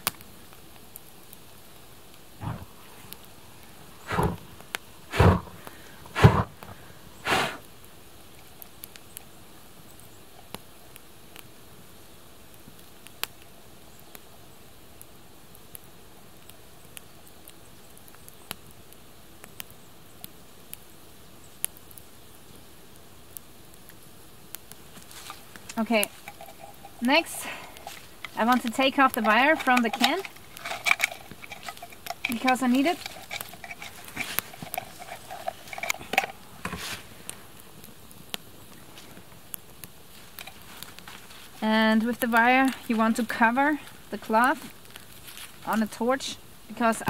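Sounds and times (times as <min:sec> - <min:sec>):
campfire crackling and popping: 0:00.0 - 0:47.0.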